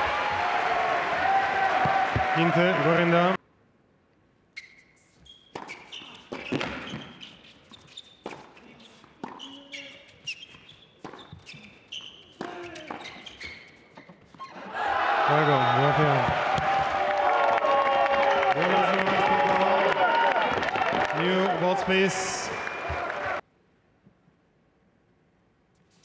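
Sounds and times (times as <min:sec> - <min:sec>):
crowd cheering and shouting: 0:00.0 - 0:03.4, 0:14.6 - 0:23.4
shoe squeaks: 0:04.5 - 0:14.6
ball bouncing: 0:05.5 - 0:07.4.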